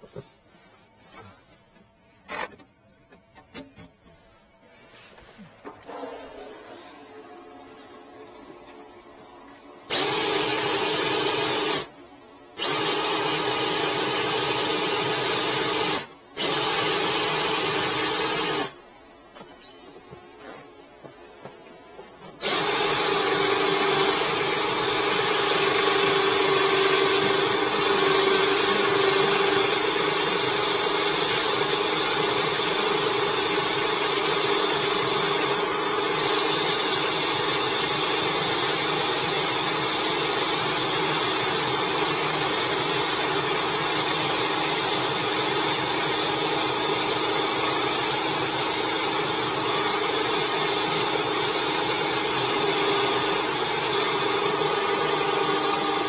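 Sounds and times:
drain cleaning machine whining: 0:09.9 - 0:11.9, 0:12.6 - 0:18.8, 0:22.4 - 0:56.0.

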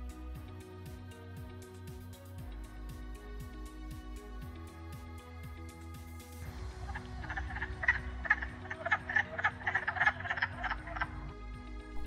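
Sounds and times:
frogs calling in chorus: 0:06.8 - 0:11.3.

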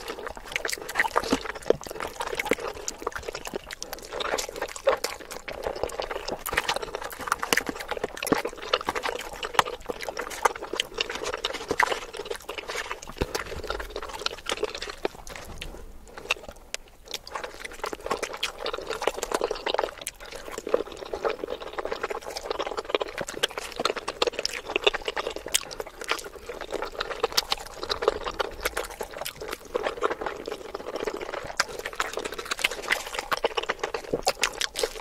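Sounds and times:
wet chewing mouth sounds: 0:00.0 - 0:35.0.

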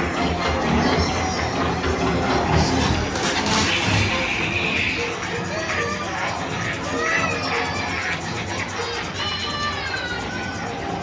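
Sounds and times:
ride soundtrack music: 0:00.0 - 0:11.0.

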